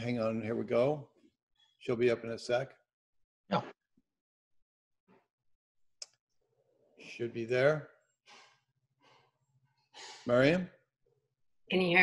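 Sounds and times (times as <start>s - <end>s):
faint breath: 8.3s - 10.4s.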